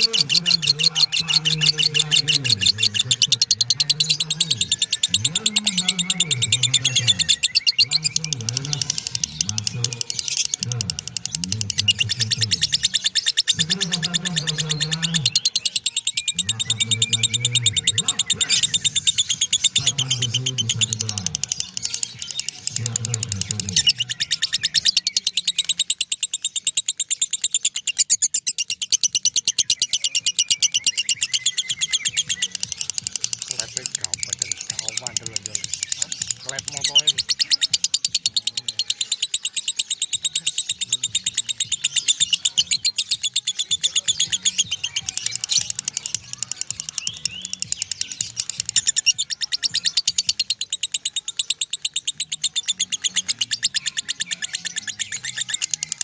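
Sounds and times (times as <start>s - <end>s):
low voice: 0.0s - 12.8s, 13.6s - 15.3s, 16.4s - 18.8s, 19.8s - 21.5s, 22.7s - 24.0s
bird rapid chattering trill: 0.0s - 56.0s.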